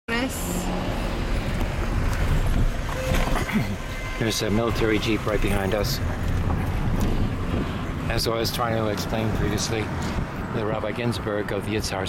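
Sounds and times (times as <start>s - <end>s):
car cabin road rumble: 0.1s - 12.0s.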